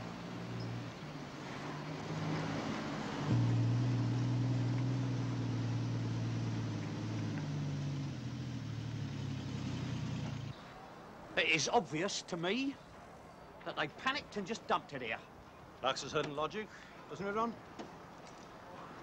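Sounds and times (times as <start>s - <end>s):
road noise: 0.0s - 19.0s
car engine running: 3.3s - 10.5s.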